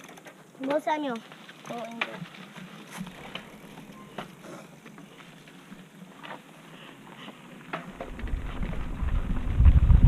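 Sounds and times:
bike clicks and rattles: 0.0 - 10.0
bike tyres rolling on dirt: 0.0 - 10.0.

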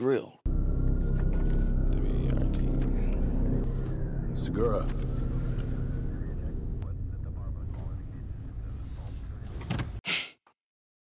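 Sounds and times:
low vehicle rumble: 0.5 - 10.0.

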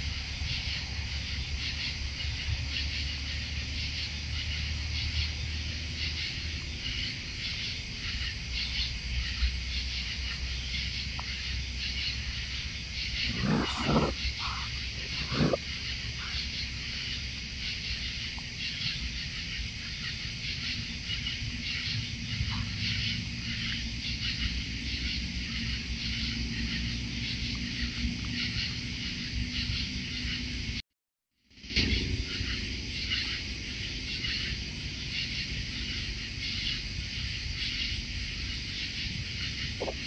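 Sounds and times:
night insects chorus: 0.0 - 30.8, 31.5 - 40.0
raccoon snarling: 13.1 - 16.4.

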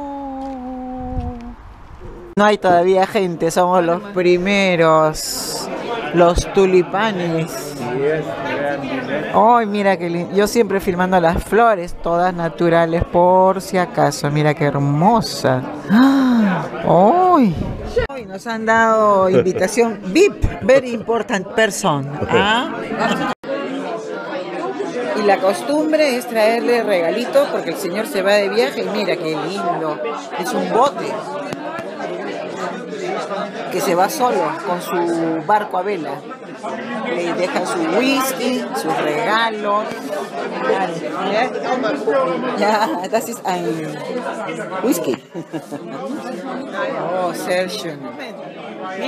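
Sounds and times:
background chatter of people: 0.0 - 49.0.

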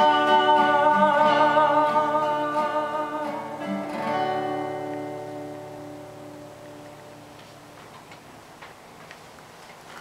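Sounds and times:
acoustic guitar chord ringing: 0.0 - 7.9
faint clicks and knocks: 6.8 - 10.0.

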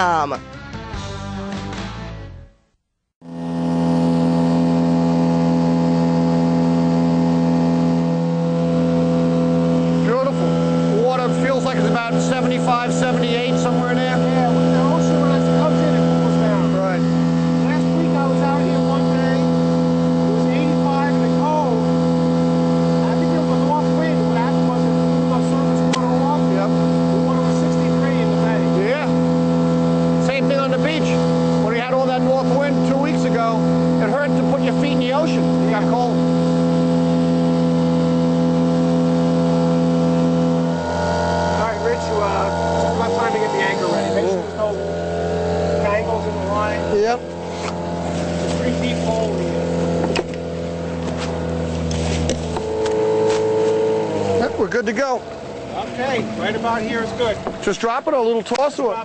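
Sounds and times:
outboard motor running: 3.2 - 59.0.

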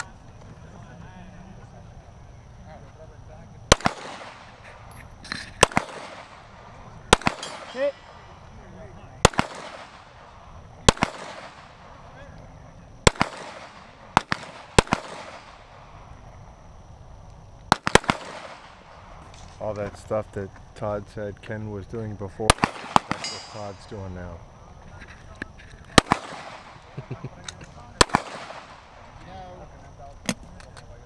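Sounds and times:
gunshots with rolling echo: 3.7 - 4.9, 5.6 - 8.5, 9.2 - 12.2, 13.0 - 16.0, 17.7 - 19.3, 22.4 - 24.0, 26.0 - 27.0, 28.0 - 29.2.

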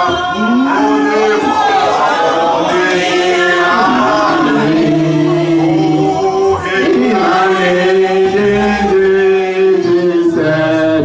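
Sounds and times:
man singing amplified: 0.0 - 11.0
voices singing beneath: 0.0 - 11.0.

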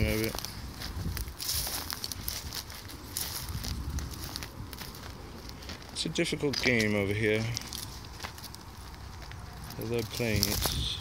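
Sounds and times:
wind rumble on microphone: 0.0 - 5.8, 7.5 - 11.0
footsteps crunching on stony trail: 0.0 - 11.0.

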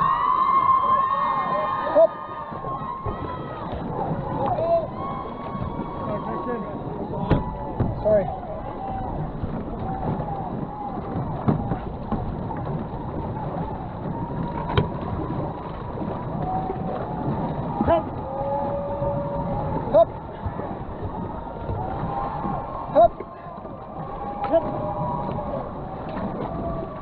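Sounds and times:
paddling: 0.0 - 27.0
water rushing along canoe hull: 0.0 - 27.0.

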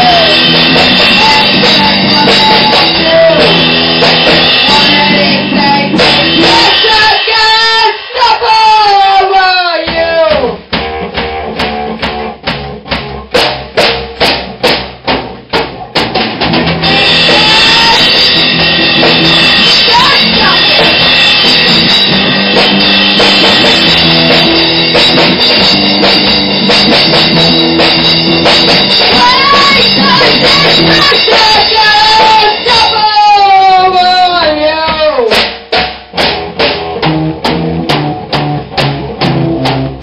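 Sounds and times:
distorted electric guitar: 0.0 - 40.0
drum kit hits: 0.0 - 40.0
punk rock band playing: 0.0 - 40.0.

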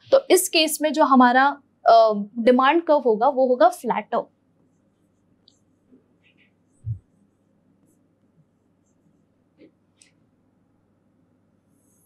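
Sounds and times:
stylus scratching on screen: 4.6 - 10.2, 11.6 - 12.0.

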